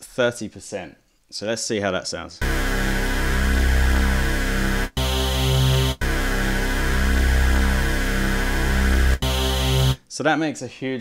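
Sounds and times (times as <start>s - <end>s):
synth playing sustained chords: 2.4s - 10.0s.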